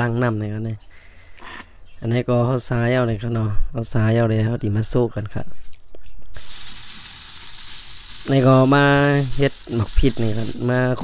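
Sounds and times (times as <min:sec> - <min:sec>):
steady hiss: 0:06.3 - 0:11.0.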